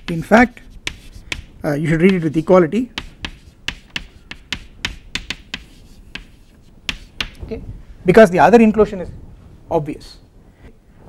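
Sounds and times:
chalk tapping on chalkboard: 0.0s - 7.4s.

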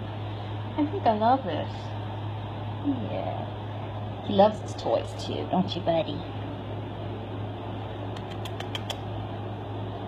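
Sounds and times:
air handling hum and hiss: 0.0s - 10.0s.

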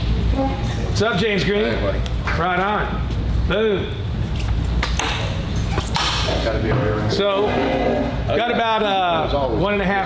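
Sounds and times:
background chatter in large hall: 0.2s - 10.0s.

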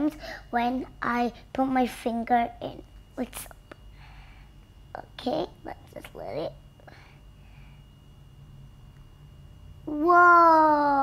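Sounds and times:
faint low hum: 0.0s - 11.0s
girl exclaiming: 9.9s - 11.0s.

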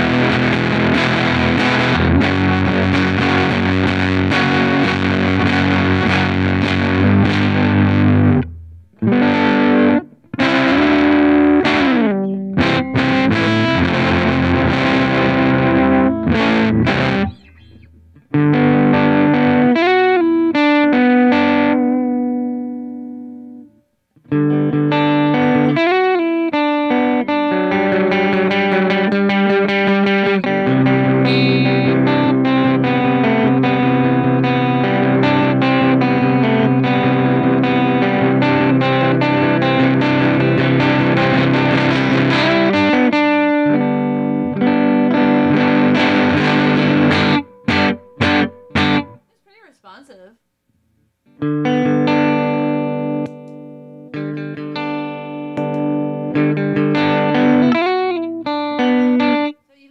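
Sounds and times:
overdriven electric guitar: 0.0s - 49.4s, 51.3s - 59.9s.

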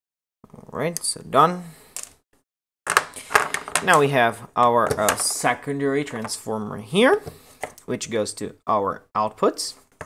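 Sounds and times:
man talking: 0.5s - 1.8s, 3.8s - 9.8s
objects handled on desk: 2.9s - 4.1s, 4.8s - 5.4s.

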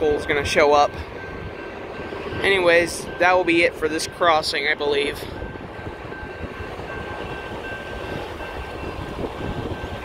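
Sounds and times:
railroad crossing bell ringing: 0.0s - 10.0s
train rumble: 0.0s - 10.0s.

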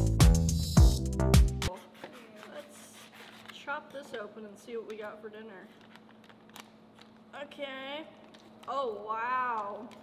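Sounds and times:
knife scratching through plastic pouch: 1.7s - 3.8s
woman speaking: 1.7s - 5.8s, 7.3s - 10.0s.

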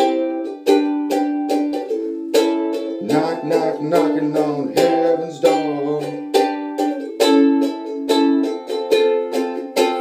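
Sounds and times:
ukulele strumming chords: 0.0s - 10.0s.

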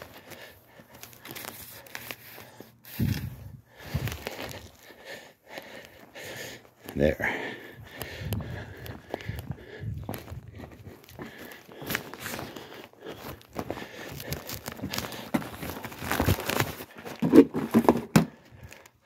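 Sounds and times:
paper flyers rustling: 0.0s - 4.9s, 11.3s - 17.2s
footsteps: 0.0s - 18.8s.

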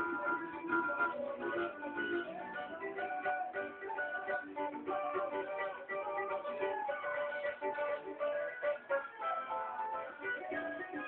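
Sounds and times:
plucked cavaquinho notes: 0.0s - 11.0s.

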